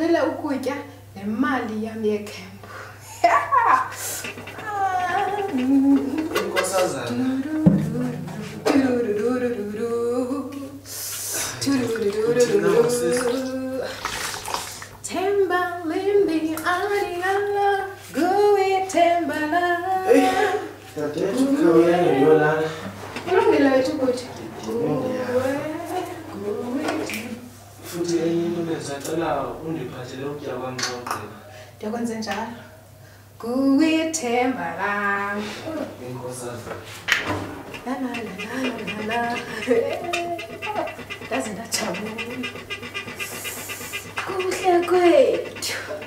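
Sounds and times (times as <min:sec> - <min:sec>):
woman singing: 0:04.5 - 0:06.4, 0:07.1 - 0:10.8, 0:11.6 - 0:14.0, 0:15.1 - 0:20.7, 0:25.2 - 0:27.5.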